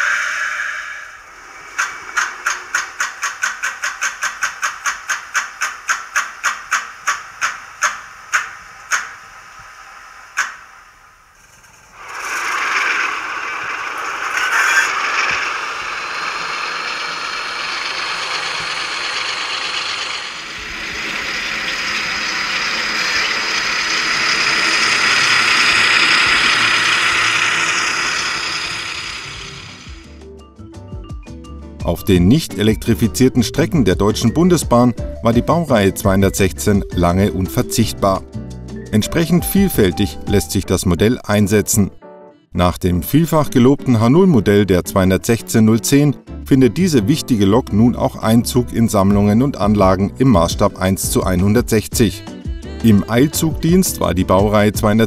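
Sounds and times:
recorded diesel engine through small speaker: 0.0s - 30.2s, 31.9s - 38.2s, 43.1s - 55.0s.

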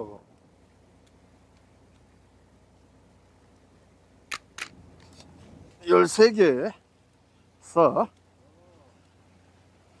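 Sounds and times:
sharp clicks: 4.3s - 4.8s.

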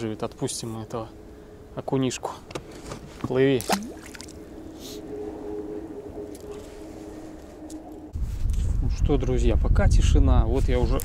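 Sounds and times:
faint steady hum: 0.0s - 8.2s
fish splashing into water: 3.6s - 4.4s.

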